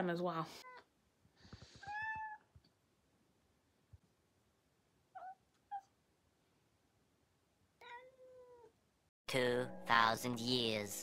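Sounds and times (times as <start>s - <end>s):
cat meowing: 1.8s - 2.5s, 5.1s - 5.9s, 7.8s - 8.7s.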